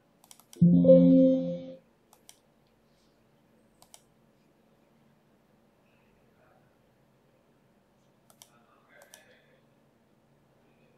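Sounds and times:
computer mouse clicks: 0.2 - 0.6, 2.1 - 2.4, 3.8 - 4.1, 8.2 - 9.3.

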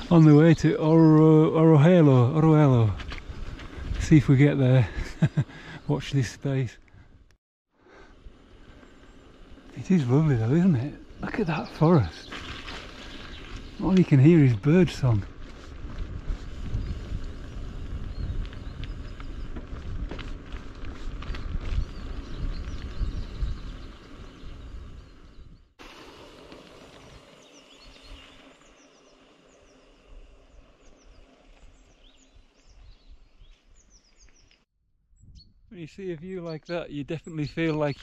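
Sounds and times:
wind and tyre rumble on microphone: 0.0 - 7.3, 8.1 - 35.7
small birds chirping: 4.1 - 6.8, 8.5 - 15.4, 16.5 - 25.7, 26.8 - 38.0.

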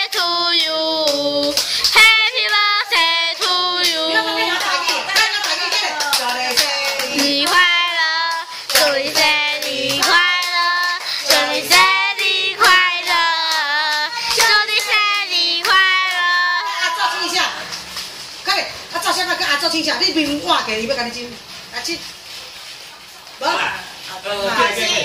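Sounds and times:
girl singing: 0.0 - 4.9, 6.7 - 16.8
woman clapping hands: 4.6 - 11.4.

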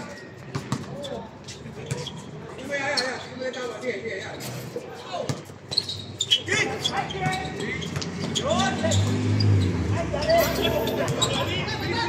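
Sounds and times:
players shouting: 6.4 - 12.0.

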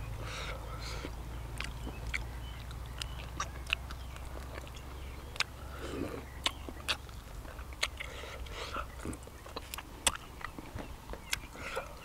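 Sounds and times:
man chewing meat off bone: 0.0 - 12.0
steady low hum: 0.0 - 12.0.

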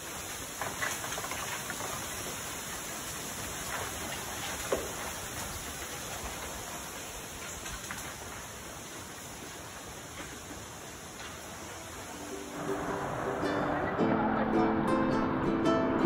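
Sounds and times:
wind through bamboo leaves: 0.0 - 15.6.

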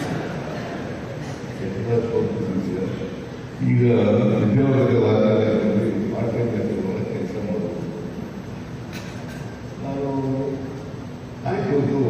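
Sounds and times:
man speaking over pa system: 1.5 - 8.1, 9.8 - 12.0.

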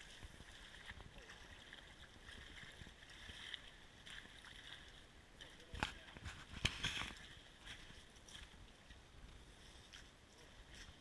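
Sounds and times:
faint flowing creek water: 0.0 - 11.0.

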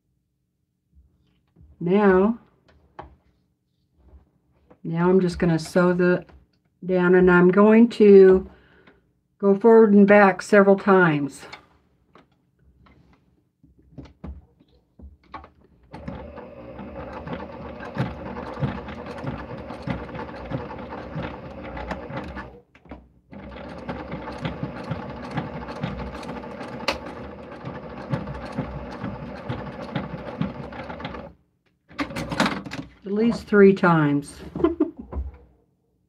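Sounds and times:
sewing machine stitching: 15.9 - 22.6, 23.3 - 32.8.

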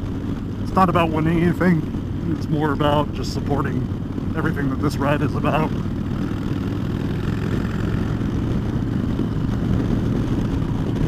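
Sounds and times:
motorcycle engine rumbling: 0.0 - 11.0
road and wind noise: 0.0 - 11.0.

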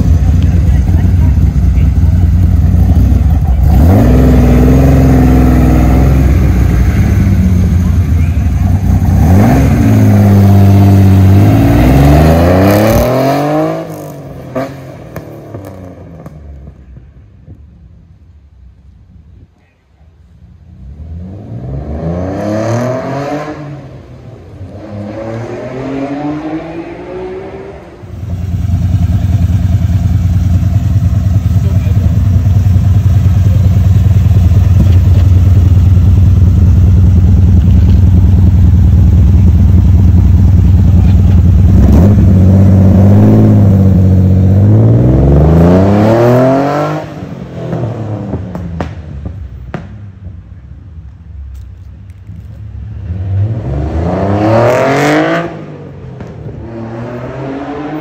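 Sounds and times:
car engine revving and running: 0.0 - 17.6, 20.2 - 58.0.

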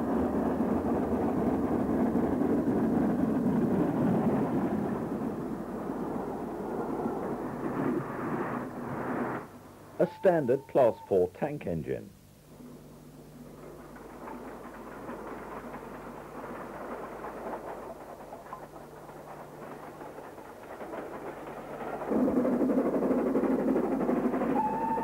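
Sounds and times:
steam locomotive rumble and clatter: 0.0 - 11.2, 12.3 - 25.0
train whistle blast: 10.0 - 11.3, 24.6 - 25.0.

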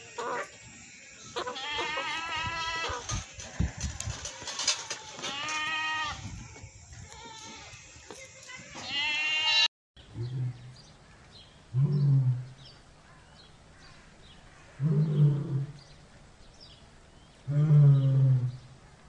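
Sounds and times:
lioness deep calls: 0.0 - 3.6, 17.5 - 18.7
goat bleating: 1.3 - 6.3, 7.0 - 9.7.

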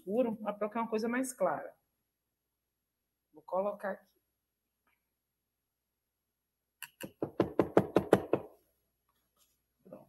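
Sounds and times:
knocks on tabletop: 7.0 - 8.5.

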